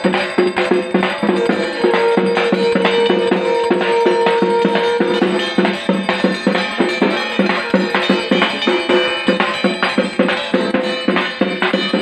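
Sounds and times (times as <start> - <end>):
drums beaten with sticks: 0.0 - 12.0.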